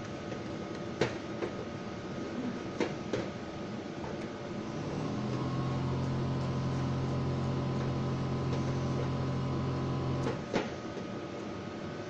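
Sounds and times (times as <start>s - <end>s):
low machine hum: 3.6s - 10.5s.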